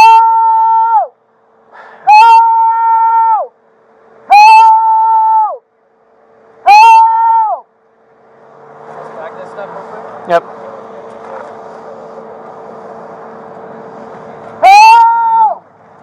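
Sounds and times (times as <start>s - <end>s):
man screaming: 0.0s - 1.1s, 2.0s - 3.5s, 4.3s - 5.6s, 6.7s - 7.6s, 14.6s - 15.6s.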